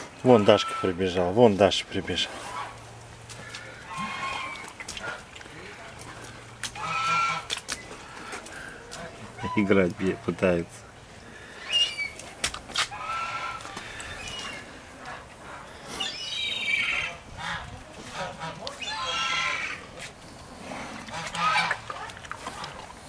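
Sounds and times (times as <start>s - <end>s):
honking animal calls: 0.2s - 1.2s, 3.5s - 5.2s, 6.7s - 7.6s, 12.9s - 15.3s, 15.9s - 19.9s, 21.0s - 22.8s.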